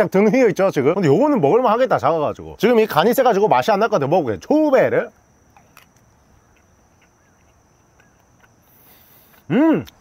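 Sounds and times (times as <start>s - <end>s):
faint crispy chewing: 5.5s - 10.0s.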